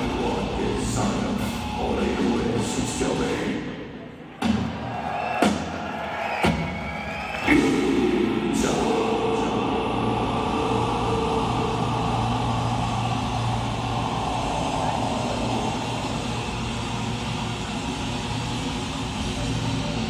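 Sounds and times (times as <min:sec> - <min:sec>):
death metal band playing live: 0:07.4 - 0:20.0
growled vocals: 0:07.5 - 0:17.6.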